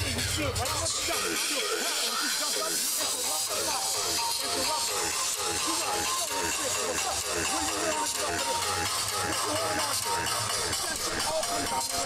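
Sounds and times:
arena crowd noise: 0:00.0 - 0:12.0
background music: 0:00.0 - 0:12.0
people talking urgently: 0:00.0 - 0:12.0.

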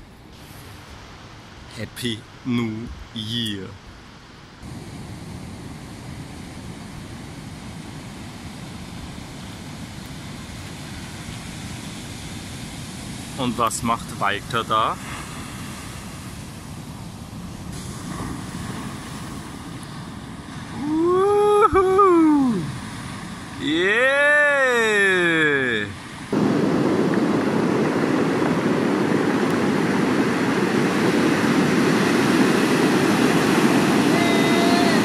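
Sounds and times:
ocean surf breaking: 0:00.0 - 0:35.0
person calling out: 0:02.0 - 0:03.7, 0:20.8 - 0:22.8, 0:23.6 - 0:26.0, 0:34.1 - 0:35.0.

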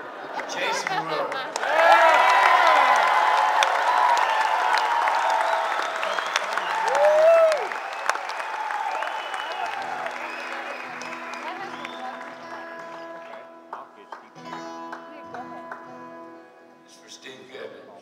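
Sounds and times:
audience applauding and cheering: 0:00.0 - 0:16.1
loud whoop: 0:01.6 - 0:10.7
guitar notes: 0:10.5 - 0:17.6.

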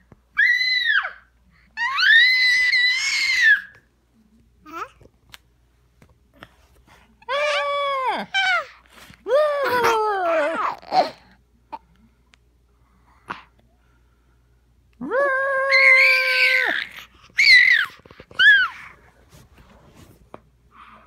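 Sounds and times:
baby screaming: 0:15.6 - 0:18.8.

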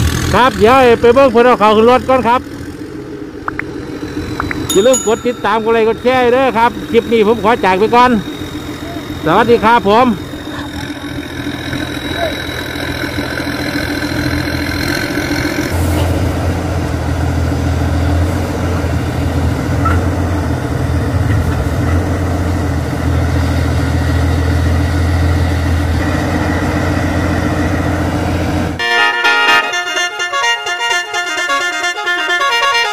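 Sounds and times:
deep engine drone: 0:00.0 - 0:28.8
diesel engine running: 0:00.0 - 0:32.9
jingle with horn-like notes: 0:04.7 - 0:06.6, 0:28.8 - 0:32.9.

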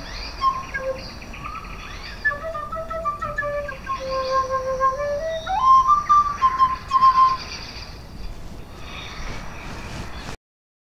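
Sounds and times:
end-blown flute playing: 0:00.4 - 0:01.1, 0:02.2 - 0:07.4.

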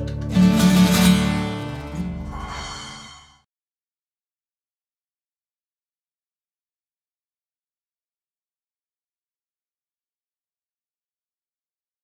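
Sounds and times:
acoustic guitar chord ringing: 0:00.0 - 0:02.6.

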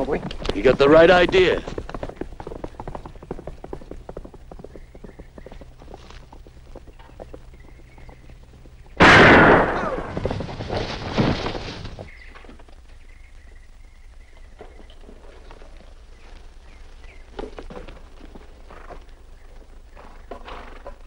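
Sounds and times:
rifle shot cracking with echo: 0:09.0 - 0:10.2.

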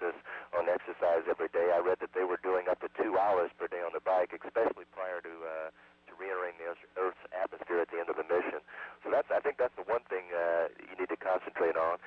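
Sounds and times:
person speaking over radio: 0:00.0 - 0:12.0
steady low hum: 0:00.0 - 0:12.0.

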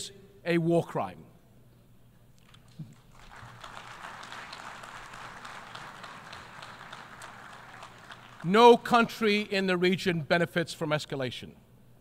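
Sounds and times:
audience applauding: 0:02.4 - 0:08.9.

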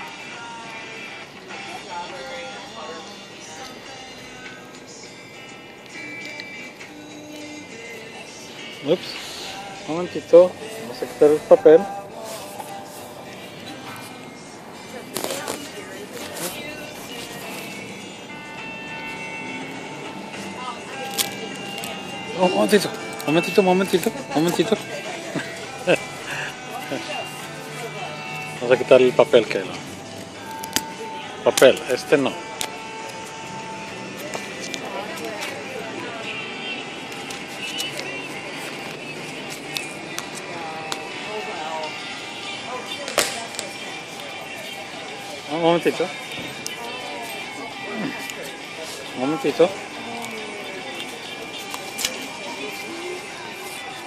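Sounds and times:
background music: 0:00.0 - 0:54.0
chatter of people: 0:00.0 - 0:54.0.

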